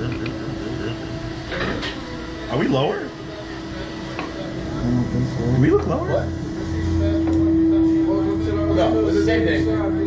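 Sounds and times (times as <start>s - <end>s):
ride machinery humming: 0.0s - 10.0s.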